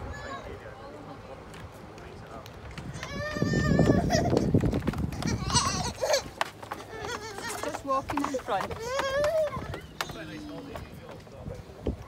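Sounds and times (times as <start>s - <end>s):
toddler squealing: 3.0s - 4.3s, 5.2s - 7.8s, 8.7s - 10.3s.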